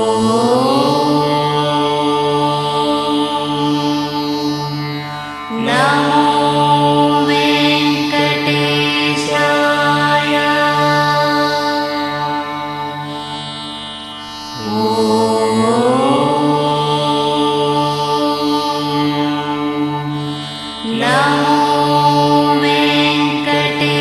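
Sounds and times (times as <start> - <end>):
voice chanting held notes: 0.0 - 4.6, 14.5 - 20.0
steady drone: 0.0 - 24.0.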